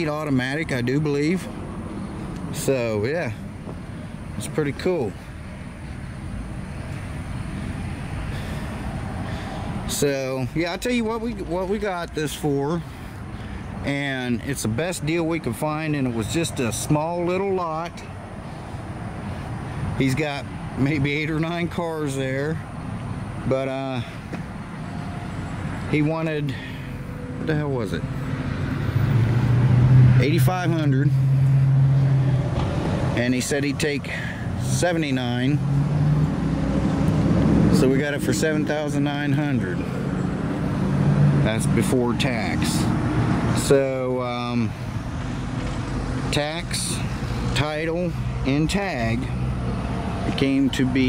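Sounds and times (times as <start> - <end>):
outdoor noise haze: 0.0 - 51.0
vehicle engine rumbling: 0.0 - 51.0.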